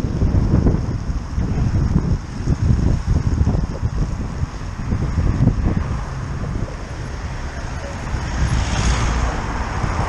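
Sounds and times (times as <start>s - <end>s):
traffic on a wet road: 0.0s - 10.0s
tyres hissing on wet road: 0.0s - 10.0s
wind rumbling on microphone: 0.0s - 10.0s.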